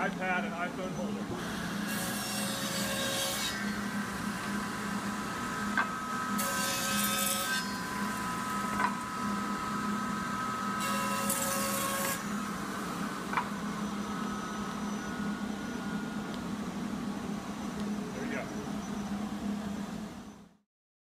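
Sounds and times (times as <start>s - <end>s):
table saw blade whine: 0.0s - 20.4s
steady low hum: 0.0s - 20.6s
saw blade cutting wood: 1.4s - 16.1s.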